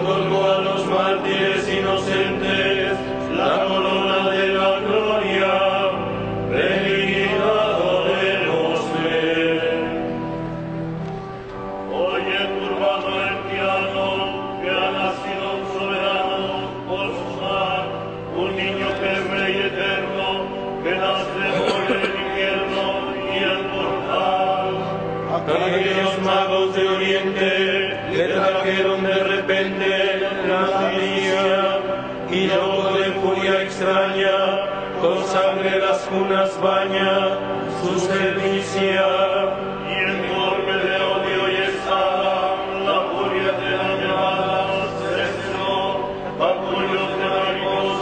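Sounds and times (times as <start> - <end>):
voices singing slow chant: 0.0 - 10.5, 11.7 - 48.0.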